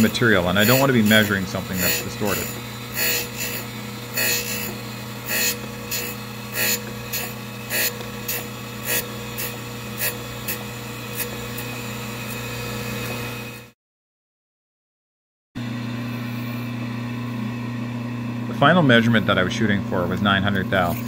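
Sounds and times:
grinding wheel on steel: 0.0s - 13.8s
surface grinder motor hum: 0.0s - 13.8s, 15.6s - 21.0s.

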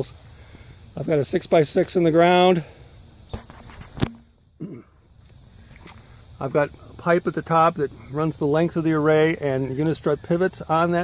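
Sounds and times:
crickets droning: 0.0s - 11.0s.

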